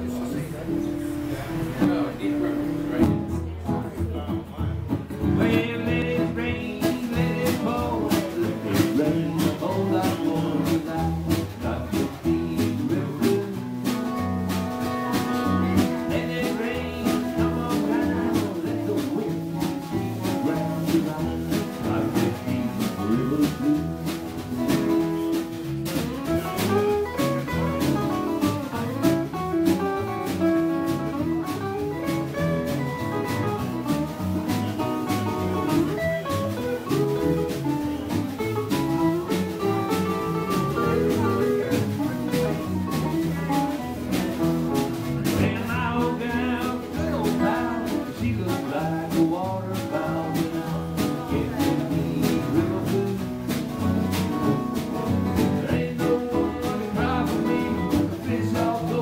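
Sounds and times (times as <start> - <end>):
acoustic guitars strumming: 0.0 - 59.0
bass line: 0.0 - 59.0
steady drum beat: 1.2 - 59.0.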